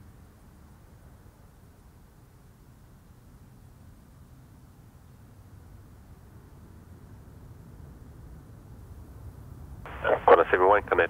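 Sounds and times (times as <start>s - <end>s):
air traffic control radio speech: 9.9s - 11.0s
distant jet airliner rumble: 9.9s - 11.0s.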